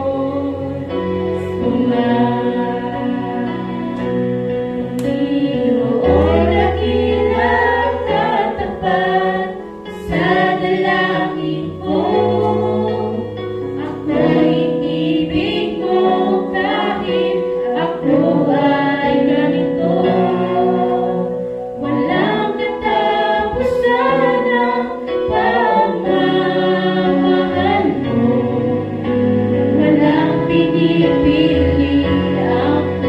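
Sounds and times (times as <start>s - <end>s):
electronic keyboard chords: 0.0s - 33.0s
group singing gospel song: 0.0s - 33.0s.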